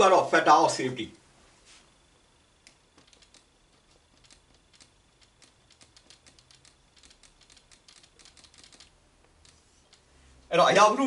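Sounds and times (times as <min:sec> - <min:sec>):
marker pen on whiteboard: 0:01.6 - 0:10.3.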